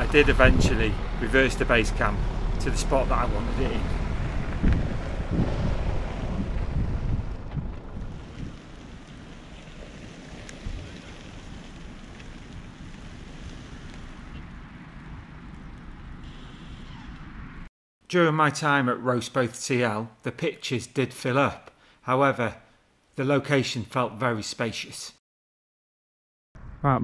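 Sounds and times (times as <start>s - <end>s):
car reversing: 0.0s - 14.6s
wind buffeting microphone: 0.0s - 16.2s.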